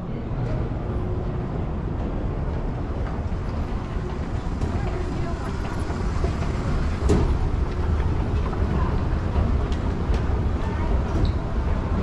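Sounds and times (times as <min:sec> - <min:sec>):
distant murmur of voices: 0:03.6 - 0:12.0.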